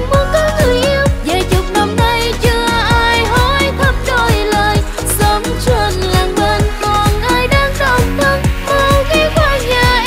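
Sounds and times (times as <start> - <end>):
pop dance music: 0.0 - 10.0.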